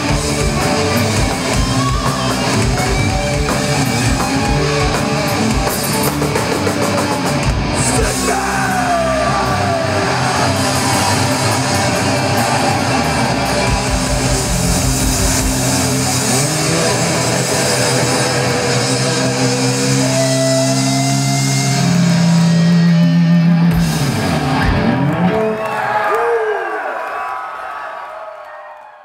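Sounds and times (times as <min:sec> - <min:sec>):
bass guitar: 0:00.0 - 0:25.7
distorted electric guitars: 0:00.0 - 0:25.8
drums: 0:00.0 - 0:26.0.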